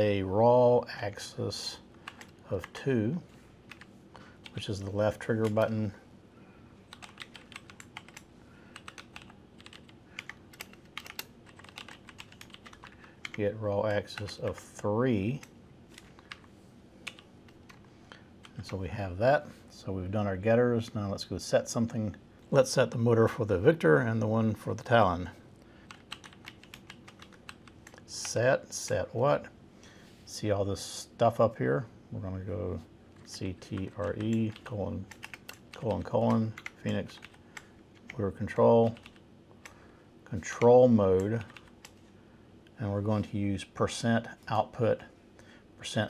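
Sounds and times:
typing on computer keyboard: 2.0 - 2.8, 6.9 - 13.4, 25.9 - 28.0, 33.6 - 38.2, 38.8 - 39.8, 41.2 - 42.0.

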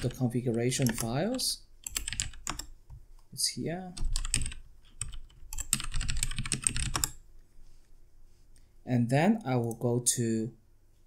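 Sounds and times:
typing on computer keyboard: 0.0 - 2.7, 4.0 - 7.2.

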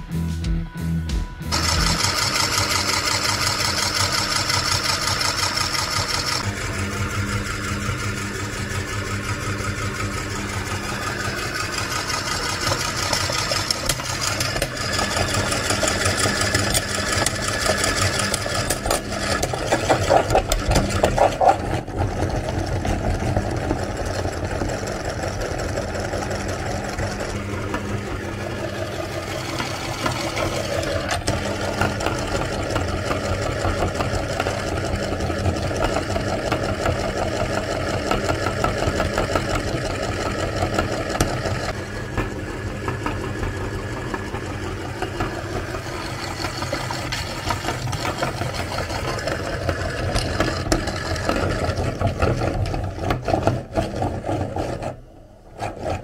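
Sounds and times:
motor-driven machine running: 1.5 - 55.0.

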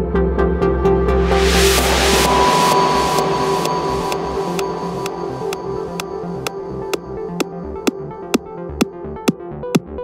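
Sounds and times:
white-noise sweep: 1.1 - 7.5
held high synth tone: 1.2 - 8.4
progressive house music: 1.2 - 9.8.

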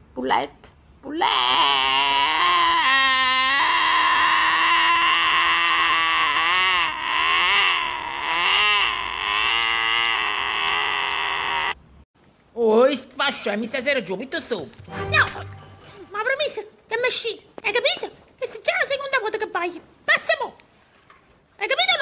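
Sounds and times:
donkey braying: 1.2 - 11.8.

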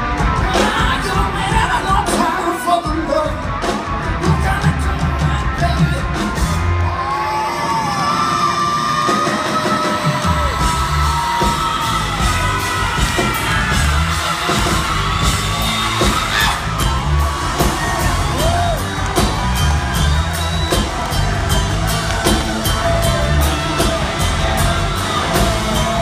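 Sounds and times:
drum kit beat: 0.0 - 6.9, 9.0 - 26.0
male singer: 0.2 - 6.5.

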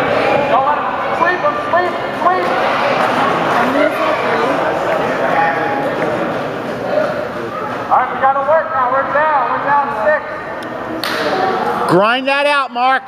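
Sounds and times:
overlapping voices echoing: 0.0 - 13.0.

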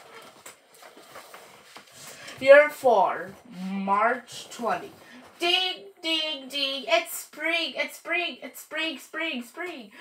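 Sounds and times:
book pages turning: 0.0 - 5.4.

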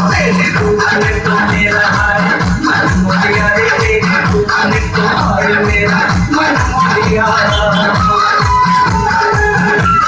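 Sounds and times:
heavy bass drum beat: 0.0 - 8.4
loud dance music: 0.0 - 10.0
high held melody: 6.5 - 8.4.

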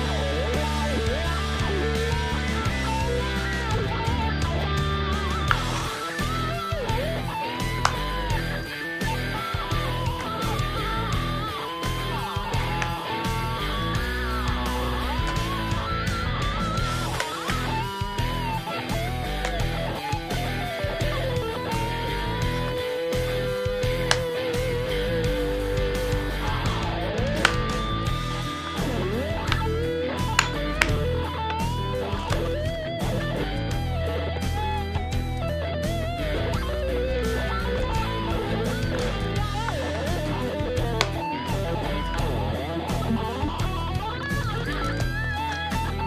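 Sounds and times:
backing track with bass: 0.0 - 46.0
electric guitar solo: 0.0 - 46.0.

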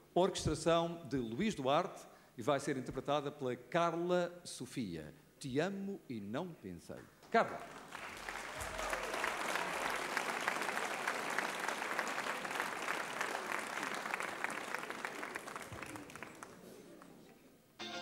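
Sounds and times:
audience applauding: 7.6 - 17.2
band playing: 17.8 - 18.0.

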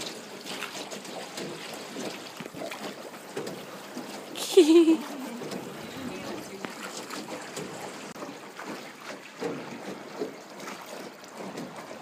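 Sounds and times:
faint small splashes: 0.0 - 12.0
oar stroking through water: 0.0 - 12.0
water lapping around boat: 0.0 - 12.0.

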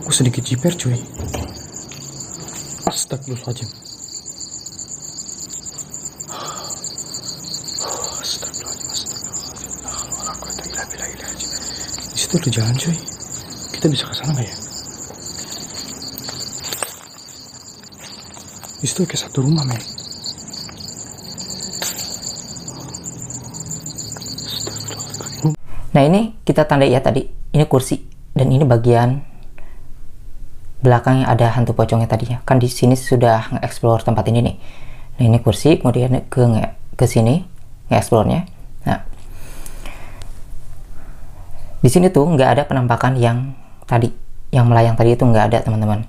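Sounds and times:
crickets chirping: 0.0 - 25.6.

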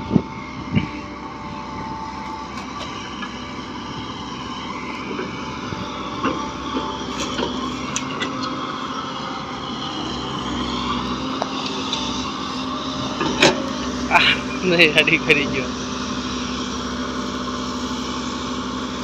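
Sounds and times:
excavator diesel engine running: 0.0 - 19.0.

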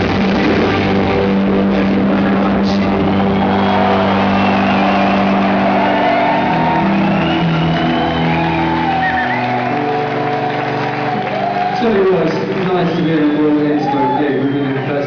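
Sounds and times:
electronic rock band playing: 0.0 - 15.0
crowd whooping and shouting: 1.2 - 15.0.

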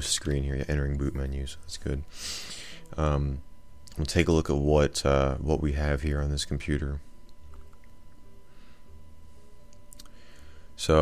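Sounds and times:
computer low hum: 0.0 - 11.0
thin steady whine: 0.0 - 11.0.

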